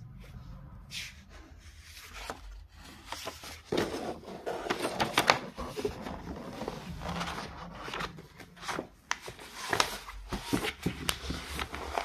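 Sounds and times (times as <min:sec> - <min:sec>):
notebook page turning: 0:01.9 - 0:12.0.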